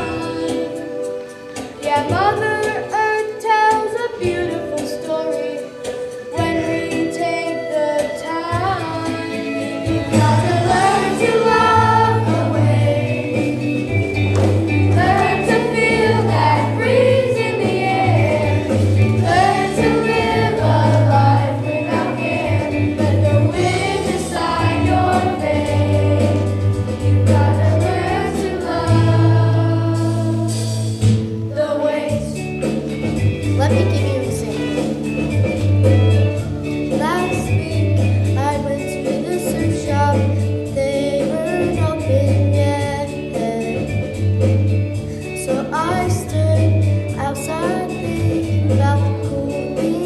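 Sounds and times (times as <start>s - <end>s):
children's chorus singing: 6.3s - 13.7s, 14.8s - 30.9s, 31.5s - 32.5s
bass line: 9.9s - 38.5s.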